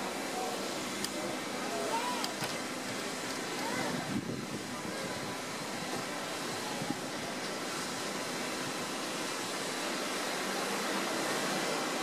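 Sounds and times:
city street ambience hiss: 0.0s - 12.0s.

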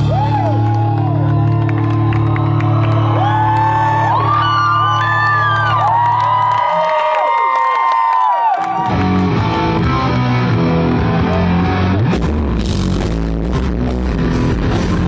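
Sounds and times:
crowd whooping and cheering: 0.0s - 12.6s.

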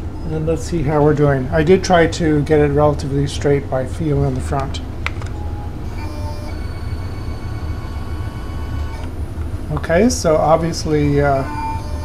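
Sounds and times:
stepper motors humming and whining: 0.0s - 12.0s.

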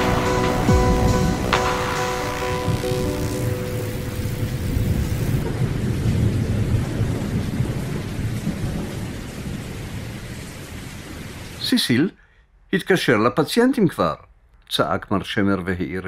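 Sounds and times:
held musical chord: 0.0s - 5.3s.

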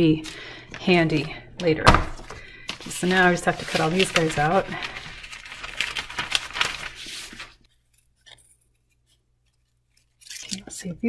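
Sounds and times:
paper rustle: 2.2s - 10.7s.

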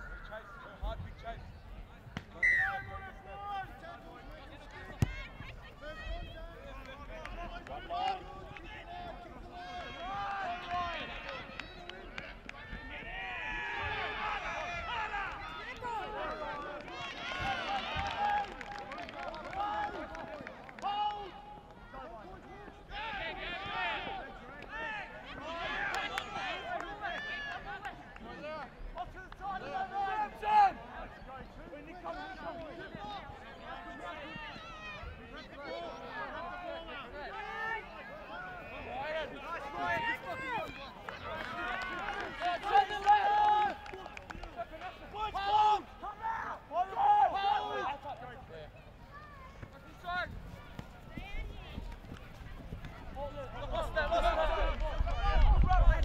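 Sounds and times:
people shouting and calling: 32.1s - 56.0s.

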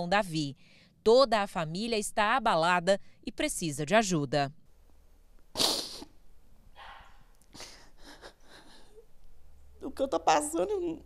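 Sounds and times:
faint breath: 0.6s - 1.0s
woman sniffling: 5.6s - 6.1s, 6.8s - 9.0s.

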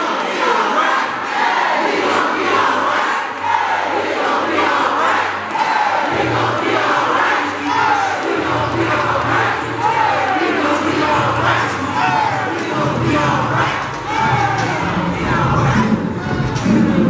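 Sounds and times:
crowd shouting: 0.0s - 17.0s.

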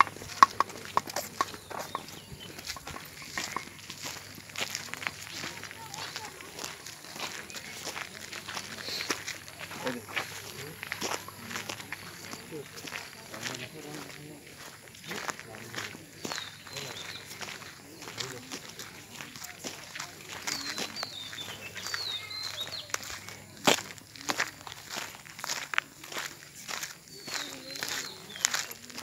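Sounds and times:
faint voices: 0.0s - 29.0s
footsteps on gravel: 0.0s - 29.0s.

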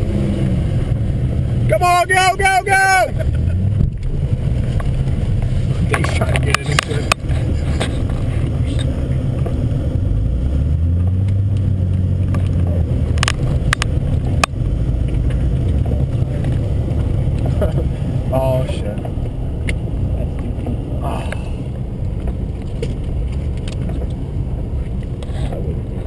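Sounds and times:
car engine revving hard: 0.0s - 1.8s, 3.0s - 18.9s.

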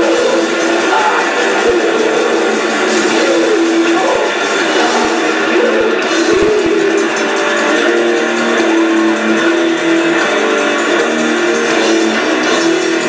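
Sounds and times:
death metal band playing live: 0.0s - 13.0s.

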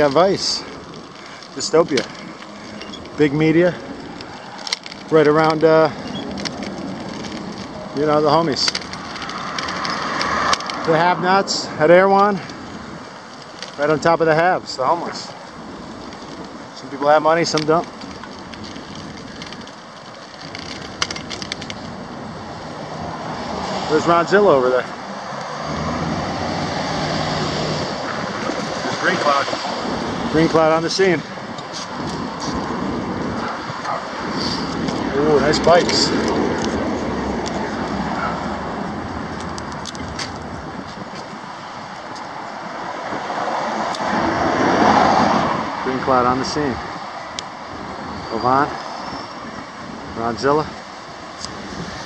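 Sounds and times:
traffic passing: 0.0s - 52.0s.

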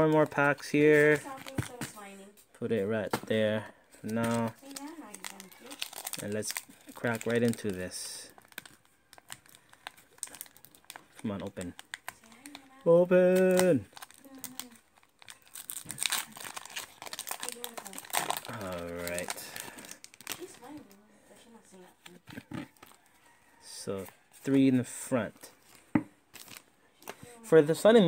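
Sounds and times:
foil wrapper crinkling: 0.0s - 2.1s, 4.0s - 21.0s, 21.7s - 23.1s, 25.4s - 27.2s
trading cards being sorted: 0.0s - 2.1s, 3.9s - 8.0s.

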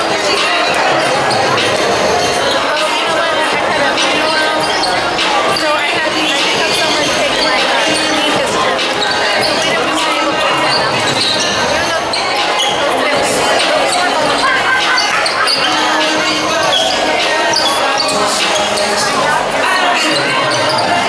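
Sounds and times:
many people talking: 0.0s - 21.0s
sneakers squeaking on court: 0.0s - 21.0s.

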